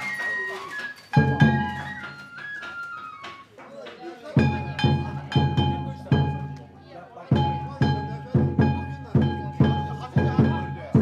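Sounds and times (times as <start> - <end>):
taiko drum beats: 1.1 - 3.4, 4.4 - 11.0.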